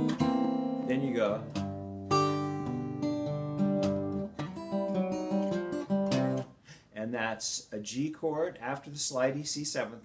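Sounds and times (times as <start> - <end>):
fingerpicked acoustic guitar blues: 0.0 - 6.5.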